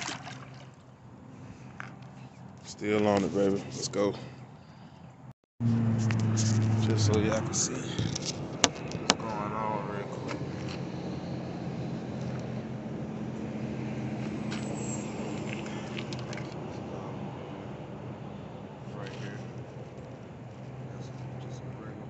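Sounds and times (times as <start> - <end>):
low motor hum: 5.6 - 22.0.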